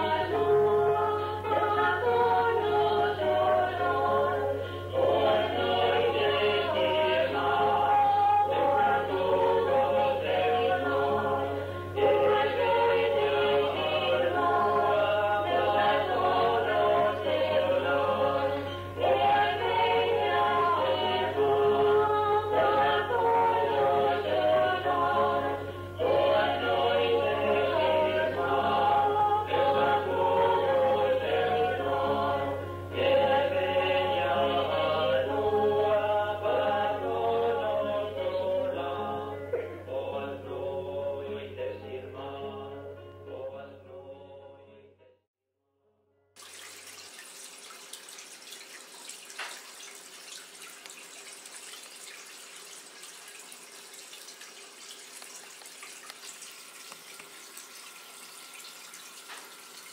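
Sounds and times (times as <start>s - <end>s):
low steady hum: 0.0s - 44.1s
vocal group singing folk song: 0.0s - 45.0s
running water: 46.4s - 59.9s.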